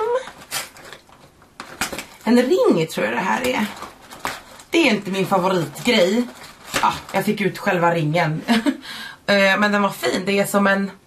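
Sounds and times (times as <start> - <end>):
person speaking: 2.2 - 3.9, 4.6 - 11.0.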